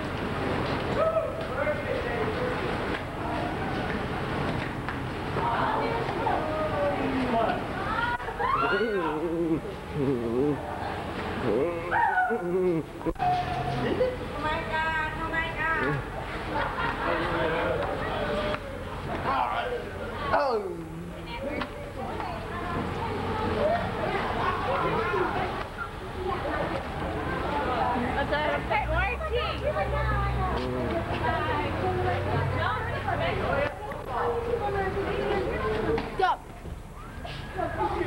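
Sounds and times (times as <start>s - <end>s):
crowd of teenagers talking: 0.0s - 38.0s.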